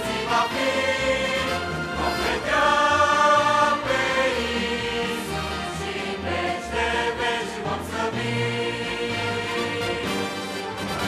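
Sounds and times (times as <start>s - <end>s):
choir singing a hymn: 0.0s - 10.8s.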